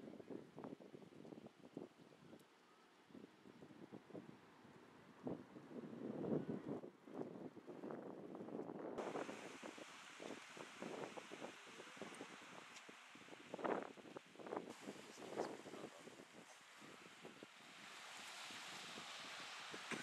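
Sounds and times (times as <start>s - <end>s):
wind gusting against microphone: 3.1s - 20.0s
sea waves hissing: 9.0s - 20.0s.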